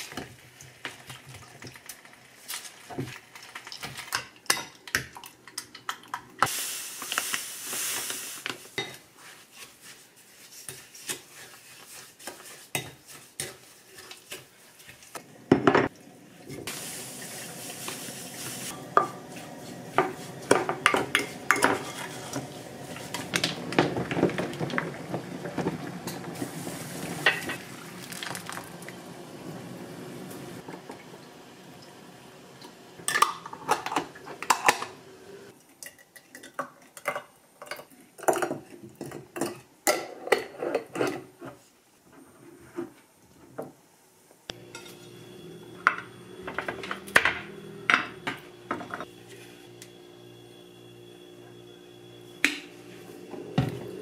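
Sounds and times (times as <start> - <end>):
wooden spatula scraping glass bowl: 18.7 - 23.4.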